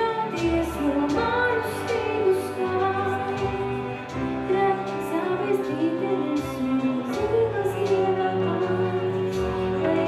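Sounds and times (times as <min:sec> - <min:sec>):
guitar: 0:00.0 - 0:10.0
keyboard: 0:00.0 - 0:10.0.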